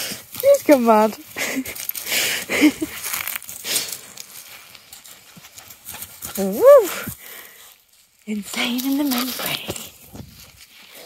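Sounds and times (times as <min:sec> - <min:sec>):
footsteps through grass and shingle: 0:00.0 - 0:11.0.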